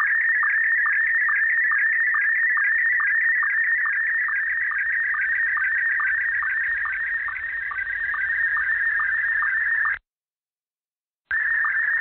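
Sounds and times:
pulsing high radio tone: 0:00.0 - 0:10.0, 0:11.3 - 0:12.0.

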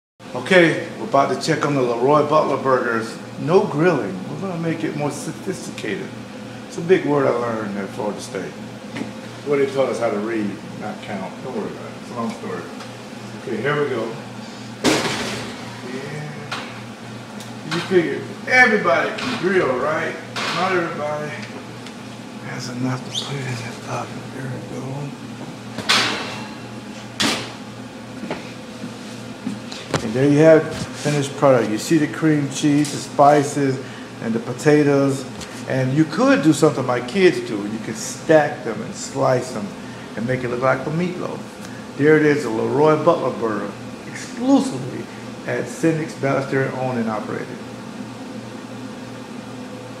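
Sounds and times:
steady low hum with hiss: 0:00.2 - 0:50.0.

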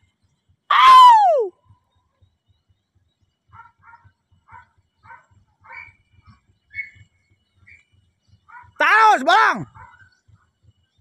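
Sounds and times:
distant dogs barking: 0:03.4 - 0:07.1, 0:08.4 - 0:08.9, 0:09.6 - 0:10.6.

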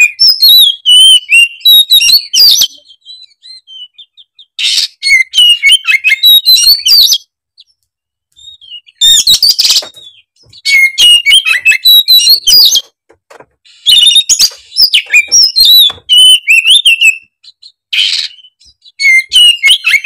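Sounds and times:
bird singing whistles and chirps: 0:00.0 - 0:07.8, 0:08.4 - 0:12.9, 0:13.7 - 0:20.0.

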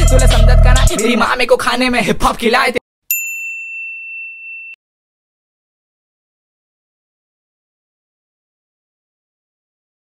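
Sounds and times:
high-pitched bell-like ding: 0:03.1 - 0:04.8.

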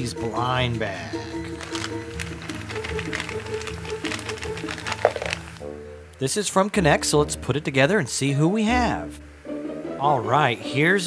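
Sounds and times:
background music: 0:00.0 - 0:11.0
plastic bag crinkling and tearing: 0:01.4 - 0:05.6
plastic pieces clicking and rattling: 0:01.5 - 0:05.6.

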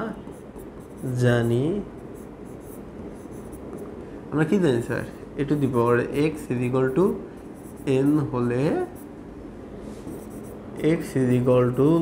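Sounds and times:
pen writing on board: 0:00.2 - 0:01.6.

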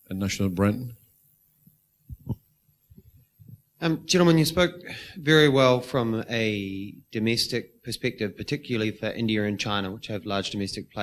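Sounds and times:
thumps on handheld microphone: 0:02.1 - 0:02.4.

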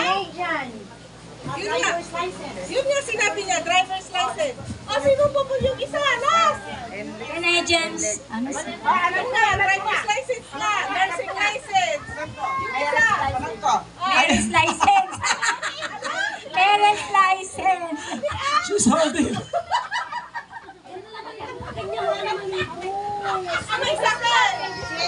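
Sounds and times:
women talking and calling out: 0:00.9 - 0:18.8, 0:20.7 - 0:25.0.

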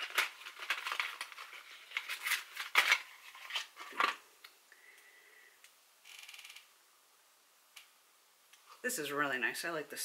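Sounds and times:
plastic packaging clacks: 0:00.0 - 0:04.2.

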